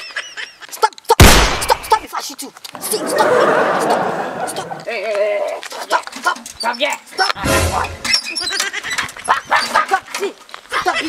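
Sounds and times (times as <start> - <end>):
men shouting: 2.8 - 4.9.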